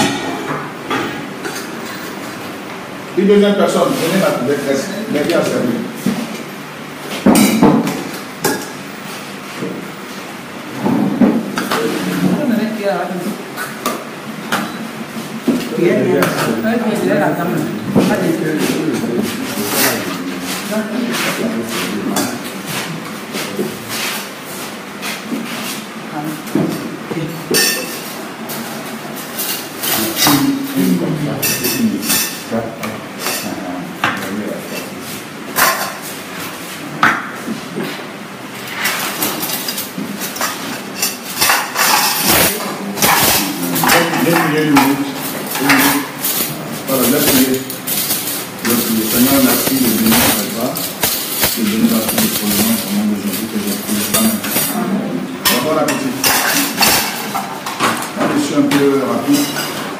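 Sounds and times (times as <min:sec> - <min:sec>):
people talking: 0:03.2 - 0:06.3, 0:10.8 - 0:13.5, 0:15.5 - 0:24.0, 0:26.1 - 0:28.0, 0:29.9 - 0:35.0, 0:42.2 - 0:47.8, 0:48.6 - 0:57.2, 0:57.8 - 0:59.8
cutlery and dishes clinking: 0:18.0 - 0:22.9, 0:26.5 - 0:32.5, 0:35.5 - 0:36.1, 0:38.6 - 0:59.9.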